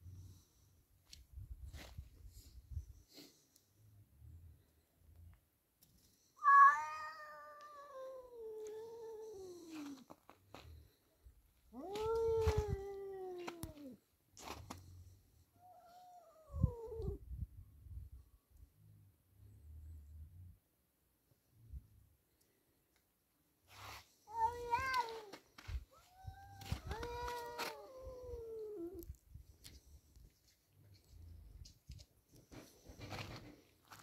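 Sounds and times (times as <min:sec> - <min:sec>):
tomcat yowling: 0:06.4 - 0:09.9, 0:24.3 - 0:25.3, 0:25.9 - 0:29.1.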